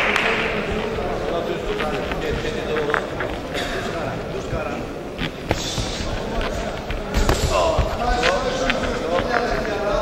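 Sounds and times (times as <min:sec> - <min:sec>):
boxing glove thuds: 0:05.4 - 0:08.8.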